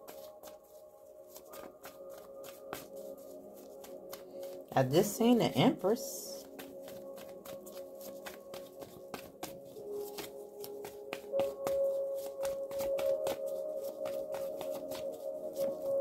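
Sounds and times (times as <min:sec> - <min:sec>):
cards being shuffled: 0:00.0 - 0:04.7, 0:06.4 - 0:16.0
soft ambient music: 0:00.0 - 0:16.0.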